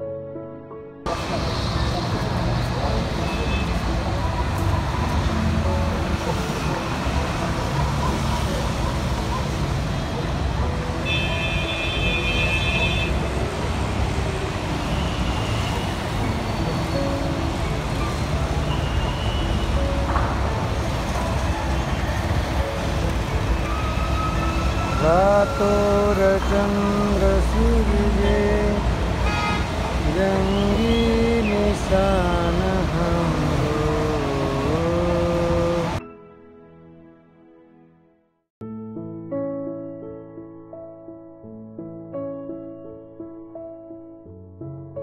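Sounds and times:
rumble of passing vehicles: 1.1s - 36.0s
steady high horn tone: 11.0s - 13.2s.

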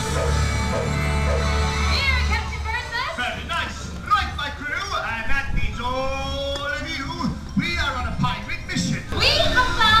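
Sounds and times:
music over loudspeakers: 0.0s - 4.0s.

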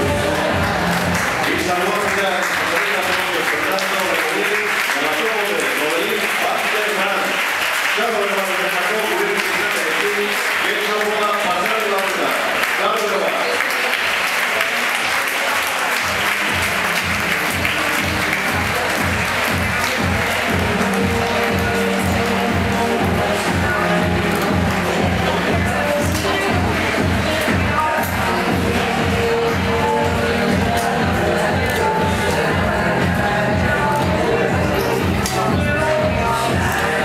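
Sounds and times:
steady low beat: 0.0s - 1.5s, 16.5s - 37.0s
audience applauding: 0.0s - 34.5s
music: 0.0s - 37.0s.

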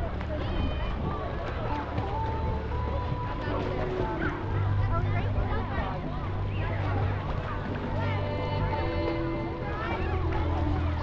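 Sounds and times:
lake water sloshing: 0.0s - 11.0s.

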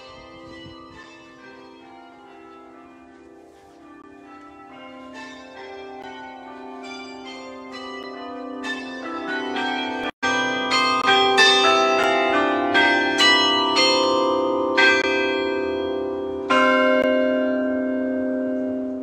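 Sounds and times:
church bells ringing: 0.0s - 19.0s.

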